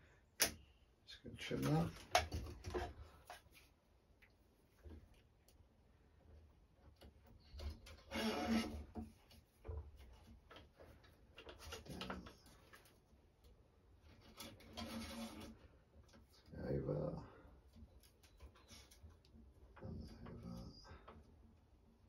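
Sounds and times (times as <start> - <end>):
racket string rubbing: 7.8 - 9.2, 14.1 - 15.7.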